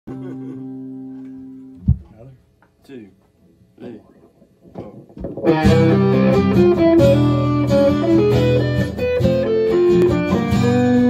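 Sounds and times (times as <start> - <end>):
electric guitar chord ringing: 0.1 - 1.8, 5.4 - 11.0
loud low thump: 1.8 - 2.2.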